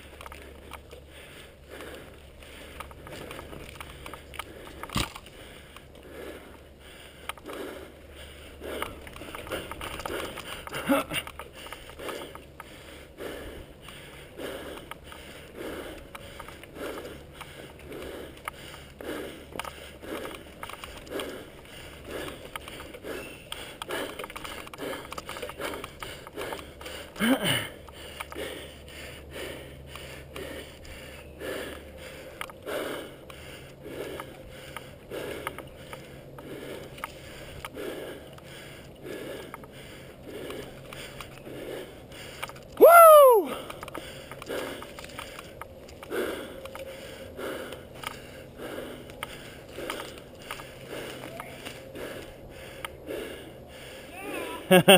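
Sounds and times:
heavy rhythmic breathing: 0.0s - 54.9s
person whooping: 42.8s - 43.6s, 54.1s - 54.8s.

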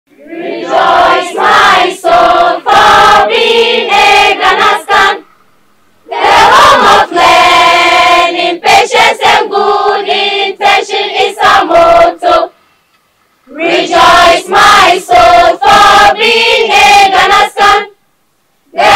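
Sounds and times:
mixed choir singing: 0.1s - 5.2s, 6.1s - 12.5s, 13.5s - 18.0s, 18.7s - 18.9s.

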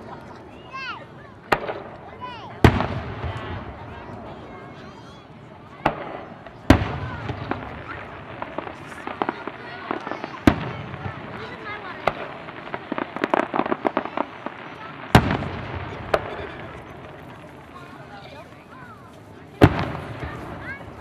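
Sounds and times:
firework bangs: 1.4s - 4.8s, 5.6s - 21.0s
rapid crackling pops: 5.8s - 21.0s.

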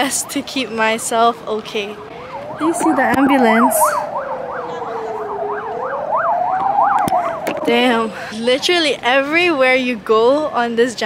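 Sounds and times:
ambulance siren yelping: 0.0s - 9.3s
slow wailing siren tone: 0.7s - 9.2s.

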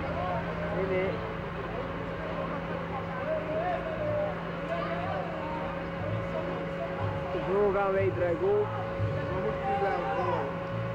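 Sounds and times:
distant voices: 0.0s - 10.9s
roller coaster rumbling on track: 0.0s - 10.9s
steady hum: 0.0s - 10.9s.

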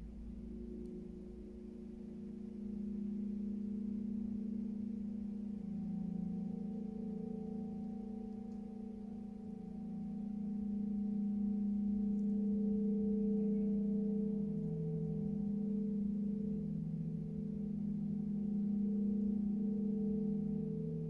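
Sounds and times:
gong low hum: 0.0s - 21.0s.

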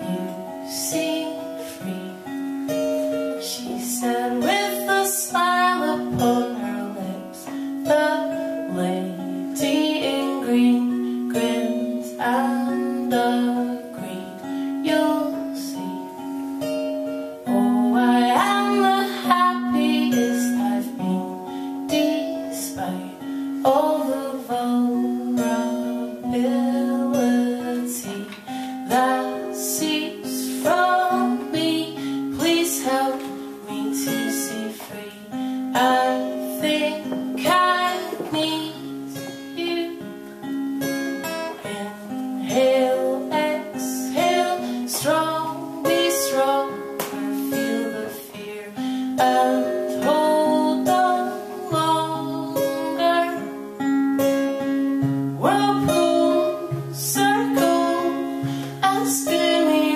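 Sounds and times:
strummed acoustic guitar: 0.0s - 59.9s
woman singing: 0.0s - 59.9s.

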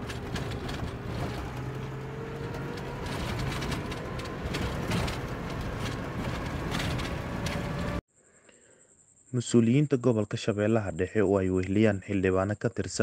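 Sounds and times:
engine whine: 0.0s - 8.0s
rattles and knocks: 0.0s - 8.0s
vehicle engine and road rumble: 0.0s - 8.0s.

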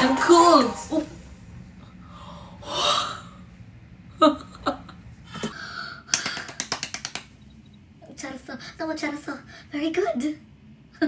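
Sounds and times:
woman laughing: 4.2s - 5.0s.

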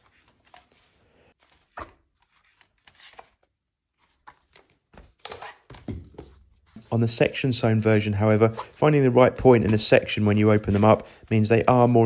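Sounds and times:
paper rustling: 0.0s - 7.0s, 8.4s - 12.0s
book covers thunking: 1.4s - 3.4s.

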